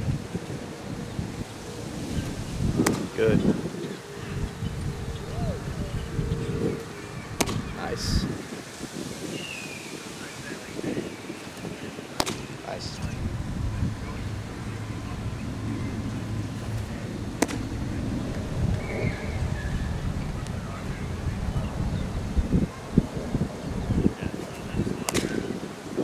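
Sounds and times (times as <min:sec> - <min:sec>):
wind buffeting microphone: 0:00.0 - 0:26.0
baseball popping into glove: 0:02.8 - 0:03.1, 0:07.4 - 0:07.7, 0:12.2 - 0:12.5, 0:17.4 - 0:17.7, 0:25.1 - 0:25.4.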